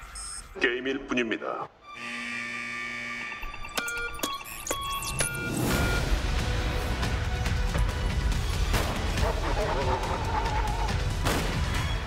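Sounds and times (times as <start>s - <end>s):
buzzer-like electronic tone: 1.8s - 6.3s.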